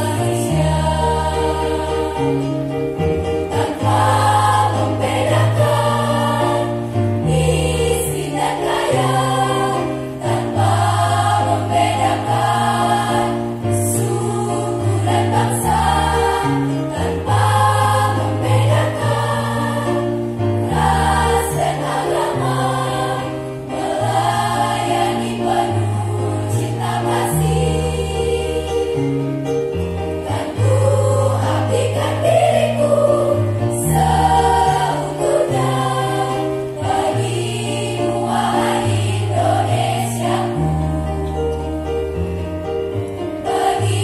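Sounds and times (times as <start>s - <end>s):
choir singing through speakers: 0.0s - 42.3s, 43.2s - 44.0s.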